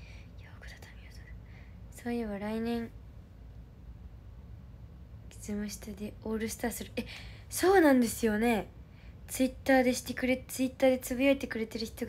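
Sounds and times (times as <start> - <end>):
faint low hum: 0.0 - 12.0
woman whispering: 0.3 - 2.2.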